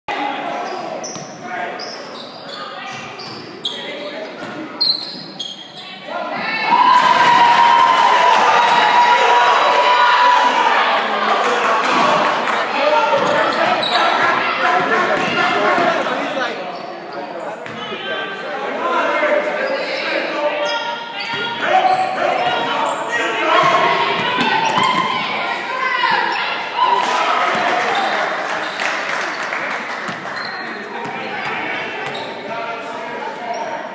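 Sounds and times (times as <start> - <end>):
voices echoing in hall: 0.1 - 33.9
sneakers squeaking: 0.6 - 6.6, 13.2 - 18.1, 19.5 - 26.8, 27.4 - 29.4, 30.1 - 32.5.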